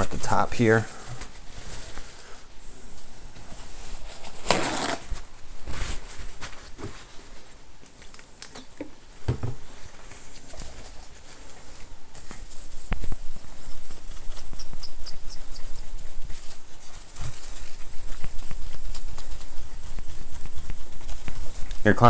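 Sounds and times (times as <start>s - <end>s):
paper towel scrubbing glass screen: 10.2s - 22.0s.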